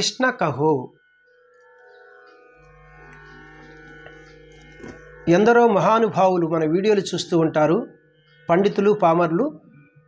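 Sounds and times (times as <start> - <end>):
electronic keyboard sustained chord: 0.0 - 10.0.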